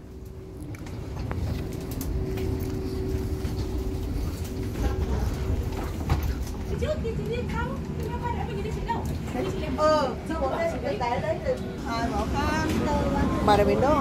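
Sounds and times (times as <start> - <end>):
aircraft and machinery hum: 0.0 - 14.0
passengers chattering: 0.0 - 14.0.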